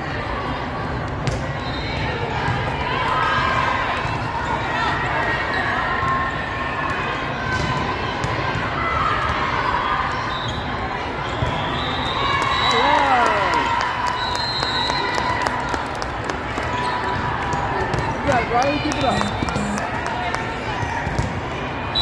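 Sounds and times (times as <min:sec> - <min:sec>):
crowd of voices: 0:00.0 - 0:22.0.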